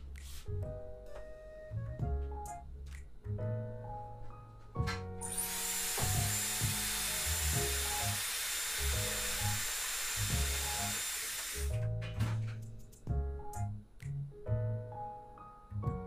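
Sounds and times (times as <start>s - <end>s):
piano music: 0.0s - 16.0s
hair dryer blowing: 5.2s - 11.7s.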